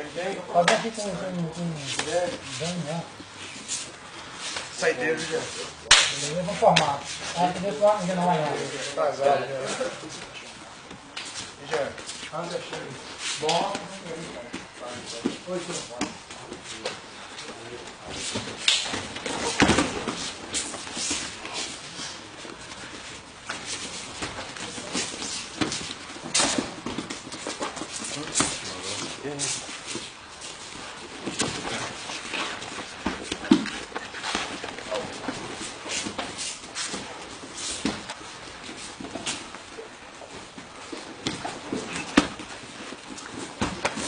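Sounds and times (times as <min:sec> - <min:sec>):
bodies slapping and thudding on mats: 0:18.0 - 0:44.0.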